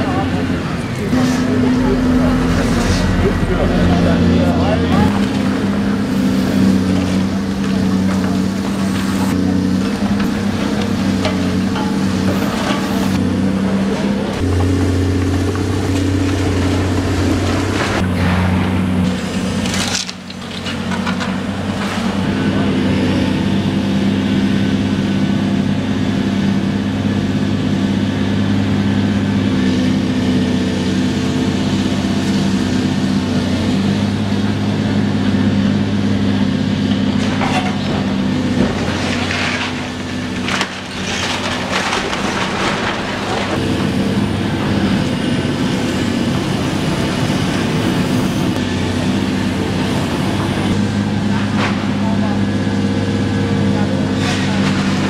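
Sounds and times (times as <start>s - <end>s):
excavator diesel engine: 0.0s - 55.0s
hydraulic grab crushing brick and timber: 0.1s - 23.2s, 33.0s - 46.8s, 48.5s - 55.0s
debris crashing down: 1.2s - 22.6s, 37.0s - 45.1s, 54.1s - 55.0s.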